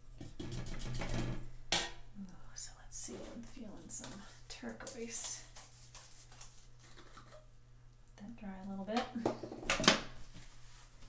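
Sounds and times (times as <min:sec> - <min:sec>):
paper rustling: 0:04.0 - 0:07.2.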